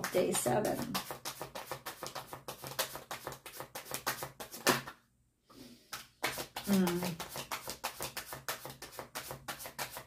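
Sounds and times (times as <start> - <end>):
cards being shuffled: 0.7 - 5.0, 5.9 - 10.0.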